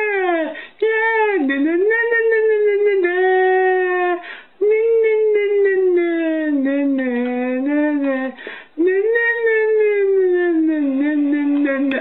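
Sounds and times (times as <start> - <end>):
high wordless voice singing: 0.0 - 12.0
breath: 0.5 - 0.8, 4.2 - 4.6, 8.4 - 8.8.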